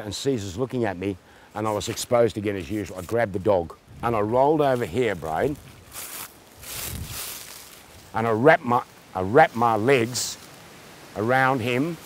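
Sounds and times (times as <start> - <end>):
footsteps on dry leaves: 4.3 - 11.1.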